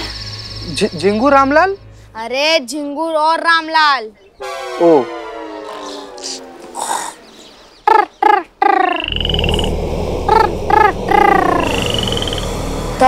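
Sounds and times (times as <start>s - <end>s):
frogs croaking: 0.0s - 2.0s, 5.1s - 12.8s
high rising whistled calls: 5.1s - 13.0s
steady low hum: 9.0s - 13.0s.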